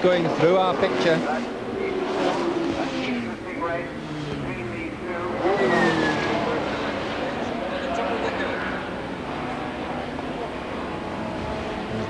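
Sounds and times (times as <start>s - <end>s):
racing cars passing at speed: 0.0s - 12.0s.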